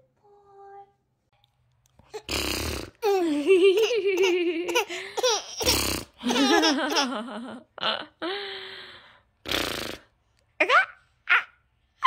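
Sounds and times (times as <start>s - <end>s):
infant laughing and giggling: 3.0s - 7.6s.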